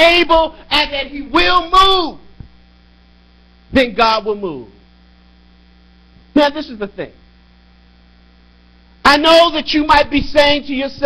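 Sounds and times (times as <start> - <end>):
man's voice: 0.0 - 2.3, 3.7 - 4.8, 6.4 - 7.2, 9.1 - 11.0
electrical mains hum: 0.0 - 11.0.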